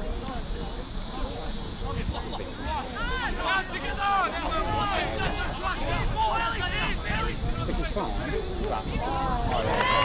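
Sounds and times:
voices calling out and talking: 0:00.0 - 0:10.0.

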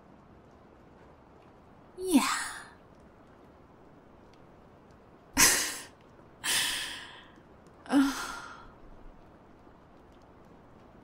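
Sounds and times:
woman sighing: 0:05.4 - 0:08.7.

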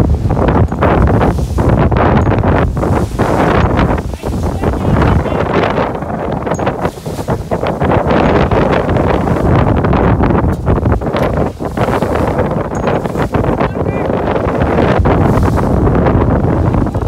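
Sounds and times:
water rushing along hull: 0:00.0 - 0:17.0
wind buffeting microphone: 0:00.0 - 0:17.0.

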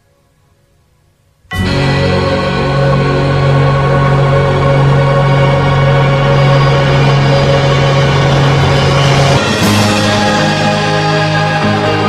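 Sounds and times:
instrumental ballad backing track: 0:01.5 - 0:12.0.

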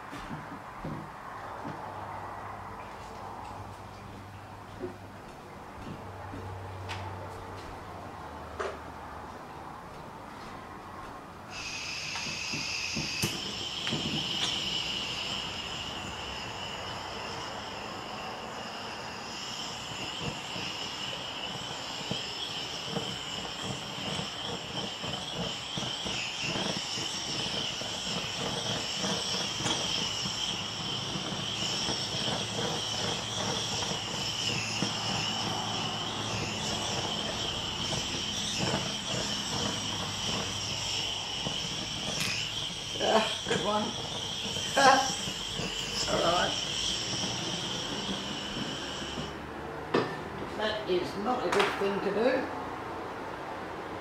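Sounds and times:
blowtorch flame hissing: 0:11.4 - 0:53.4.

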